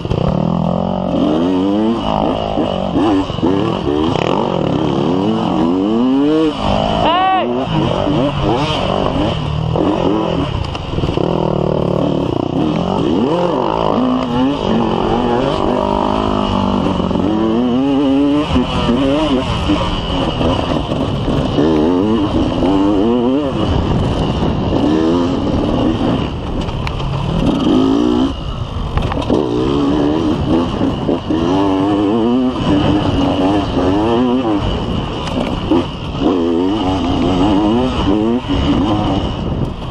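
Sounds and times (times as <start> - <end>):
motorcycle engine revving: 0.0 - 39.9.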